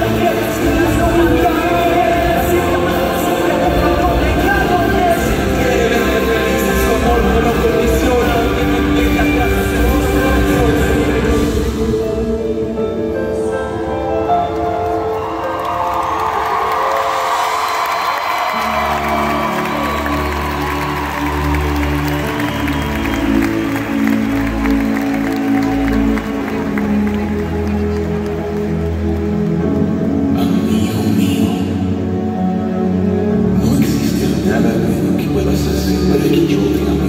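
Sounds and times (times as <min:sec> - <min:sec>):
deep bass: 0:00.0 - 0:12.4
crowd cheering: 0:14.5 - 0:29.8.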